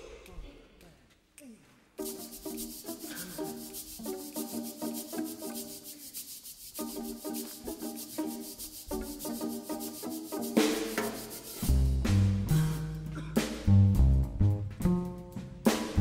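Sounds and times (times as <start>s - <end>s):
jazz chamber ensemble playing: 2.0s - 6.0s, 6.8s - 16.0s
drum kit high strikes: 10.6s - 16.0s.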